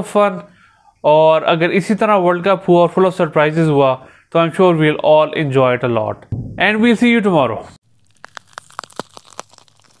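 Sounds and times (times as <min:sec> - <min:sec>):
sharp irregular crackles and clicks: 0:08.0 - 0:10.0.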